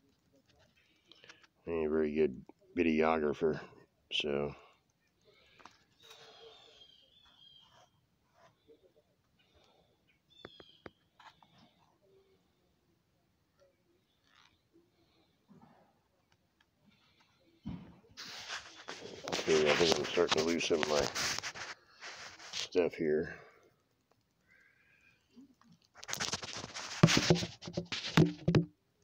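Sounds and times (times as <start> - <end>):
faint bird chirps: 5.0 - 12.6
phone being handled rustling: 18.2 - 22.8, 26.0 - 28.7.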